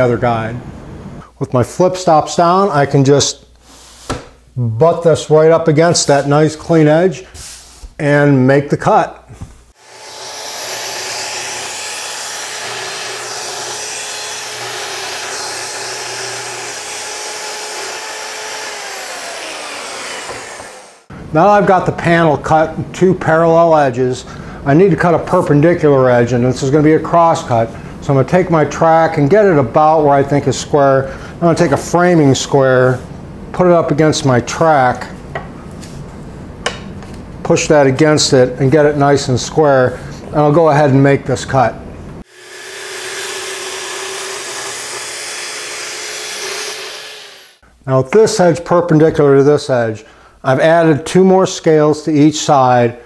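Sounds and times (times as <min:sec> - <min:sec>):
circular saw cutting wood: 0:09.8 - 0:21.1, 0:42.2 - 0:47.6
saw motor winding down: 0:09.8 - 0:21.1, 0:42.2 - 0:47.6.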